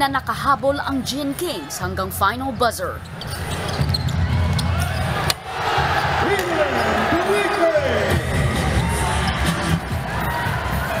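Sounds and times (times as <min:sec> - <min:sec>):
arena noise: 0:00.0 - 0:11.0.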